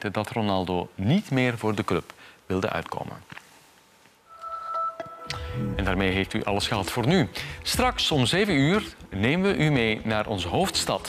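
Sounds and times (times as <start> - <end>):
electronic tone chord: 4.3 - 7.8.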